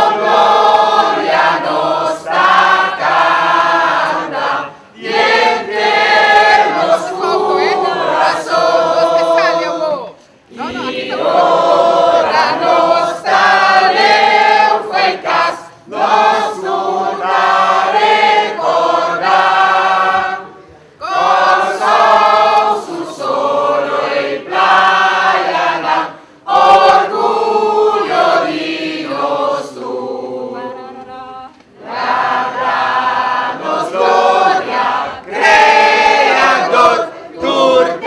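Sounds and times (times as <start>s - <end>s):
large crowd singing in unison: 0.0s - 38.0s.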